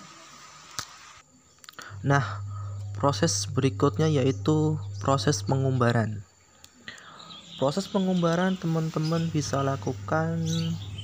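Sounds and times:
background hiss: 0.0 - 11.0
person speaking: 1.8 - 6.2, 6.8 - 11.0.

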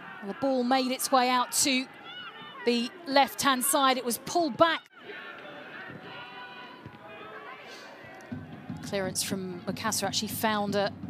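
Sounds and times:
stadium crowd voices: 0.0 - 11.0
faint crowd chanting: 4.9 - 8.9.

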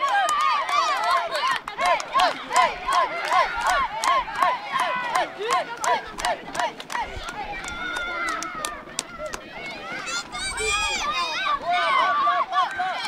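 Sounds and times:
crowd shouting and cheering: 0.0 - 13.0.

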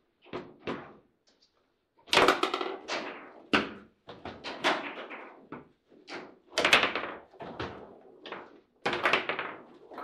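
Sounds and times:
foosball ball and rods knocking: 2.1 - 7.2, 8.3 - 10.0.

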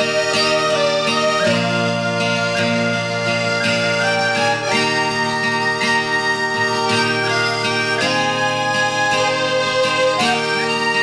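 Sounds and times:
reed instrument melody: 0.0 - 11.0.

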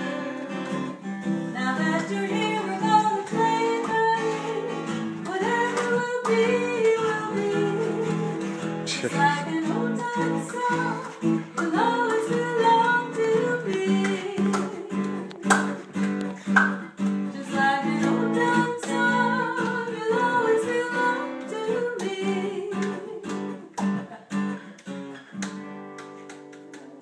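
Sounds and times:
person singing: 0.0 - 15.7, 17.3 - 23.5
acoustic guitar strumming: 0.0 - 27.0.

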